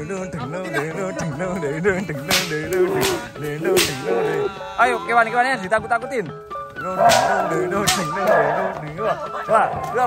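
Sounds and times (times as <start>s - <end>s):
traditional music: 0.0s - 10.0s
whip cracking: 2.3s - 4.2s, 7.0s - 8.6s.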